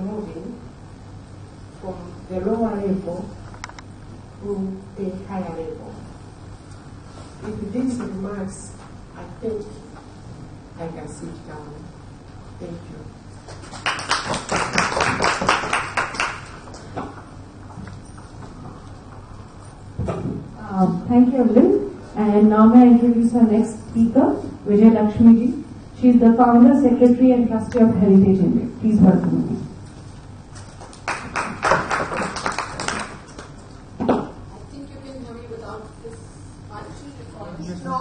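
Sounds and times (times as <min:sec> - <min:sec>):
scattered applause: 0:13.5 - 0:16.7, 0:30.8 - 0:33.6
audience clapping: 0:13.5 - 0:16.8, 0:30.7 - 0:33.6.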